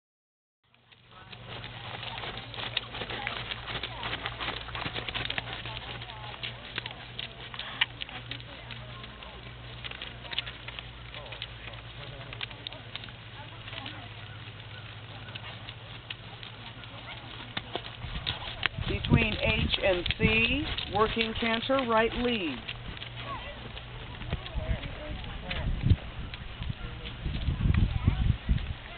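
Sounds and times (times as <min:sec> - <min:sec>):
faint distant voices: 0:00.7 - 0:28.9
steady low hum: 0:00.7 - 0:28.9.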